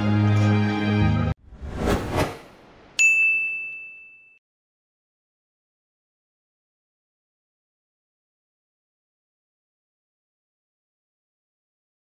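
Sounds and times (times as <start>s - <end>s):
bright high ding: 3.0s - 4.4s.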